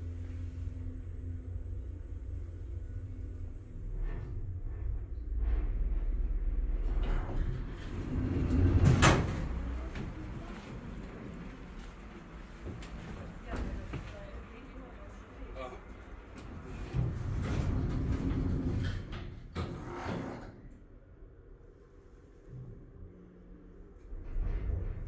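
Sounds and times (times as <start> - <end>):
elevator humming: 6.0 - 19.5
sliding doors opening: 6.8 - 13.9, 16.4 - 20.7.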